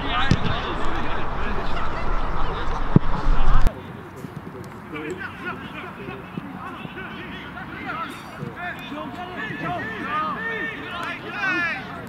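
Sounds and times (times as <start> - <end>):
people shouting and calling: 6.8 - 12.0.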